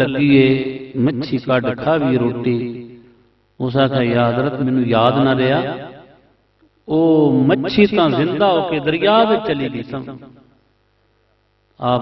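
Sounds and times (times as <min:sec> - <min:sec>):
man speaking into microphone: 0:00.0 - 0:02.8, 0:03.6 - 0:05.8, 0:06.8 - 0:10.3, 0:11.8 - 0:12.0
faint steady hum: 0:00.0 - 0:12.0.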